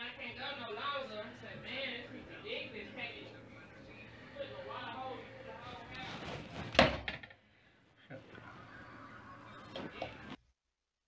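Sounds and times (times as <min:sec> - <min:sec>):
rustling handling noise: 0:05.6 - 0:07.0.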